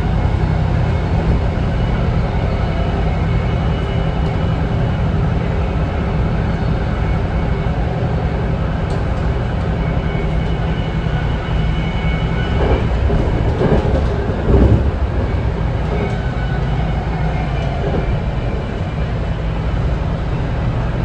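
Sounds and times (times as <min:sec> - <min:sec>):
train knocks: 0:00.0 - 0:05.6, 0:08.4 - 0:19.3
train wheels rumbling on rail: 0:00.0 - 0:21.0.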